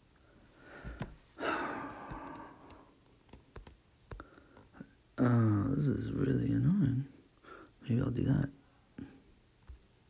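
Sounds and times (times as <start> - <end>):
breath: 0.3 - 2.9, 4.1 - 4.8, 7.4 - 7.8
taps on glass tablet screen: 2.1 - 4.3.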